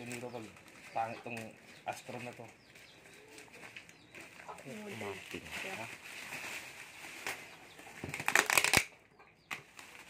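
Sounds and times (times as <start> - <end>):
bubble wrap rustling and crinkling: 0.0 - 8.9, 9.5 - 10.0
bubble wrap crackling burst: 4.6 - 10.0.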